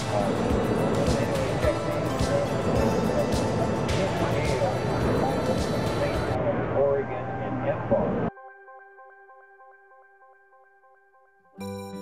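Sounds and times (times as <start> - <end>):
synthesizer melody: 0.0 - 6.4, 7.0 - 12.0
outdoor voices chattering: 0.0 - 8.3.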